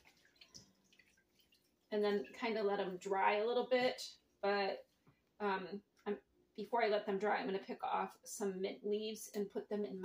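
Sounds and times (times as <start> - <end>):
water splashing and dripping: 0.0 - 3.0.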